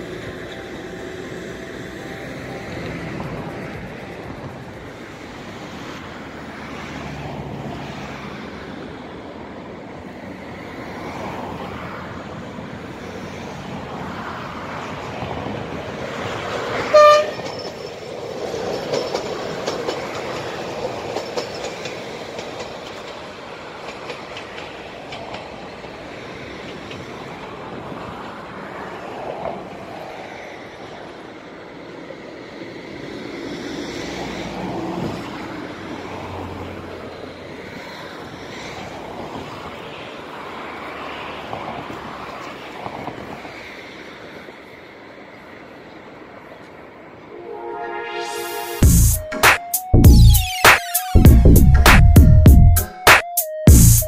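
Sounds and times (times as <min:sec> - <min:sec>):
train rumbling on tracks: 0:00.0 - 0:50.4
train horn blast: 0:16.8 - 0:17.6, 0:47.3 - 0:49.0.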